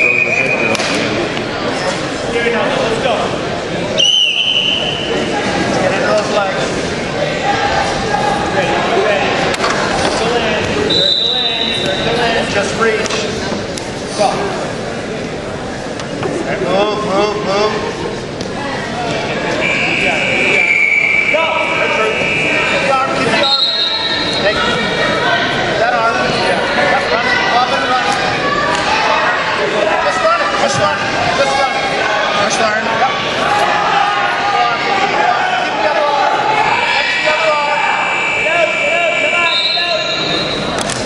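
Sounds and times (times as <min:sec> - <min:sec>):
voices calling out in a hall: 0:00.0 - 0:41.0.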